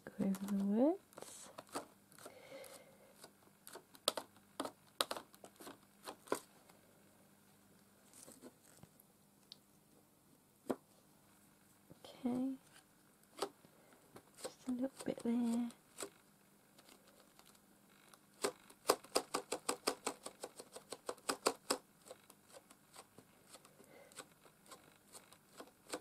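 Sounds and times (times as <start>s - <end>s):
sponge dabbing through plastic stencil: 14.2s - 16.1s, 18.4s - 26.0s.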